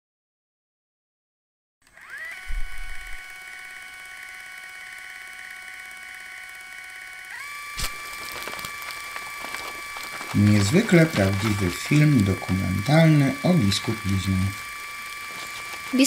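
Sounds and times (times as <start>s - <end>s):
electronic buzzing tone: 1.8s - 16.0s
low thump: 2.5s - 3.1s.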